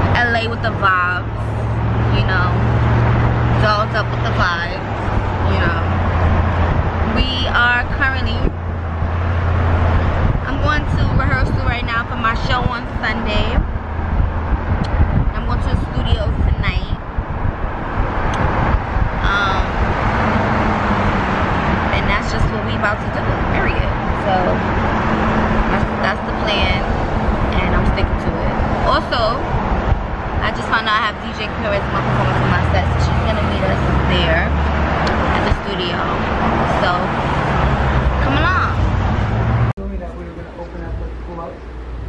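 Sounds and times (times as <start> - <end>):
car cabin road and engine noise: 0.0 - 42.0
person talking: 19.2 - 19.8.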